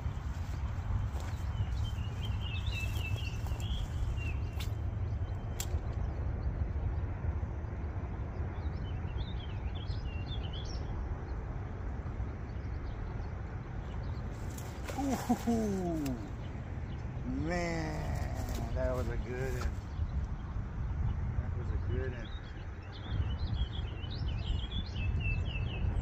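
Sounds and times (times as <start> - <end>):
wind rumbling on microphone: 0.0 - 26.0
small bird chirping: 0.4 - 5.8.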